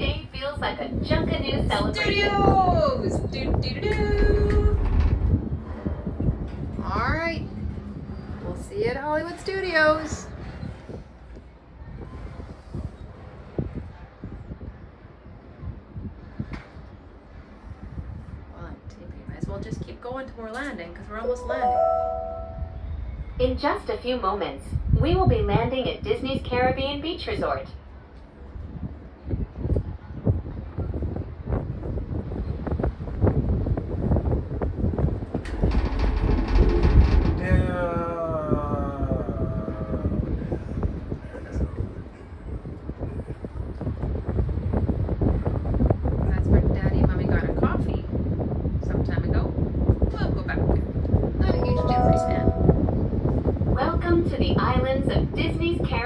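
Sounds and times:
gondola cabin low rumble: 0:00.0 - 0:56.0
knocks and rattles: 0:35.1 - 0:37.7.

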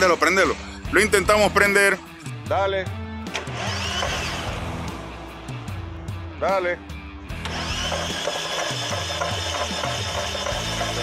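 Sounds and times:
background music: 0:00.0 - 0:11.0
starter motor cranking: 0:03.3 - 0:04.5, 0:07.4 - 0:11.0.

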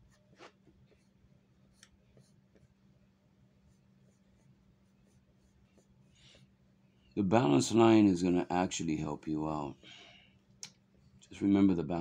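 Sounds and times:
pencil scratching on paper: 0:00.0 - 0:02.9, 0:03.5 - 0:06.1
faint low hum: 0:00.0 - 0:12.0.

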